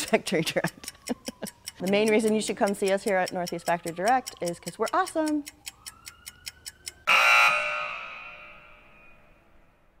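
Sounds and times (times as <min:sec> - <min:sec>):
clock ticking: 0:00.0 - 0:08.4
loud alarm ring: 0:07.0 - 0:09.5.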